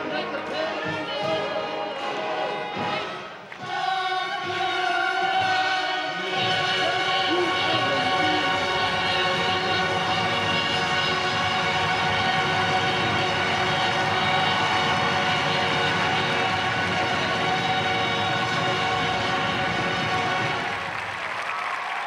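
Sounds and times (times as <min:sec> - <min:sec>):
marching band brass chord: 0:01.5 - 0:21.2
crowd applause: 0:06.4 - 0:22.0.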